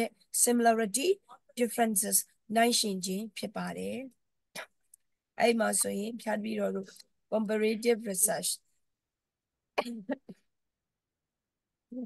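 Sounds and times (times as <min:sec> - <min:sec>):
woman coughing: 0:09.8 - 0:10.4.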